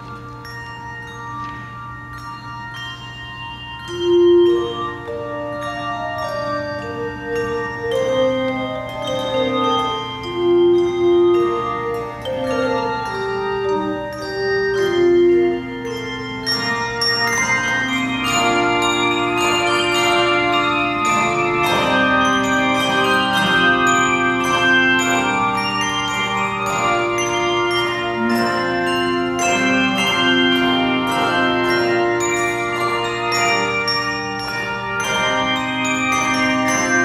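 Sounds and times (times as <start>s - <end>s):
handbell choir ringing: 0.0s - 37.0s.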